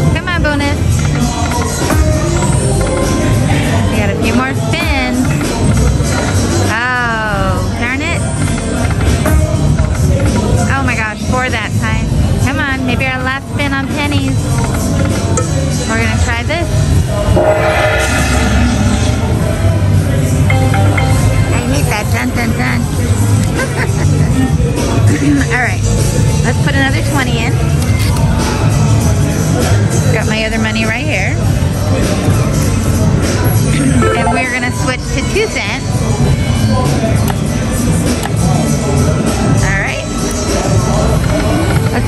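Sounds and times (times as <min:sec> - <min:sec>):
low casino hum: 0:16.9 - 0:24.2, 0:33.7 - 0:35.5
rush of noise: 0:17.3 - 0:21.4
slot machine chord tones: 0:20.4 - 0:22.4, 0:33.8 - 0:35.2.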